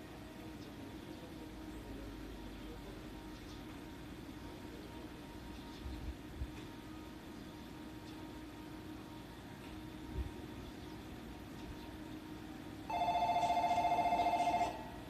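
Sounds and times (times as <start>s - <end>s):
steady low hum: 0.0s - 15.0s
electric bell trilling: 12.9s - 15.0s.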